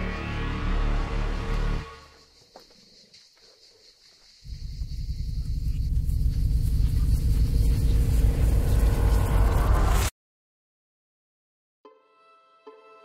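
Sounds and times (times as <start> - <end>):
deep rumble: 4.5 - 10.1.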